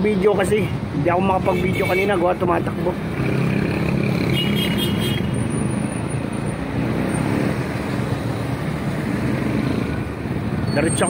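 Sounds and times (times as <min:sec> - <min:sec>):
motorcycles passing: 0:00.0 - 0:11.0
traffic engine rumble: 0:00.0 - 0:11.0.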